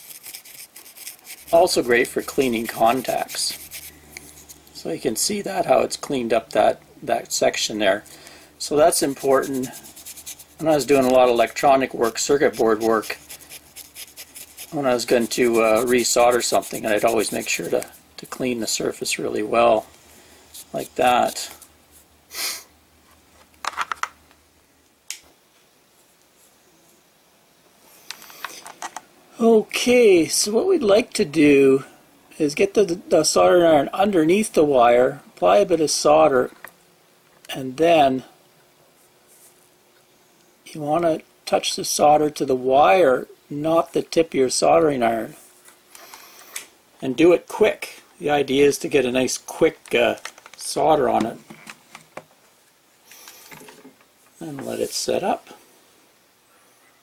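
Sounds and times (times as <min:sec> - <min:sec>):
clicking and rustling from handling: 0:49.8 - 0:50.6.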